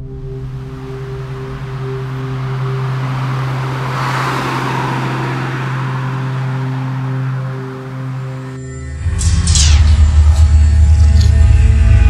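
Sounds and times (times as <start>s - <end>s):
car passing by: 0.0s - 8.6s
low droning film score: 0.0s - 12.0s.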